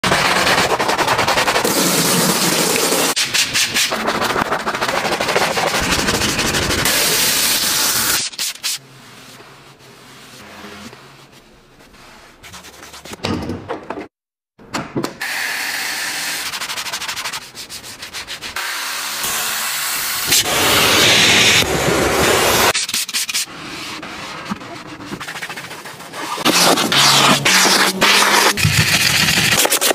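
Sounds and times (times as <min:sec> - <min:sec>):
stiff brush scrubbing foam: 0:00.0 - 0:03.2, 0:23.7 - 0:29.9
cloth rubbing car interior: 0:09.0 - 0:12.4
cloth wiping leather seat: 0:09.1 - 0:12.4.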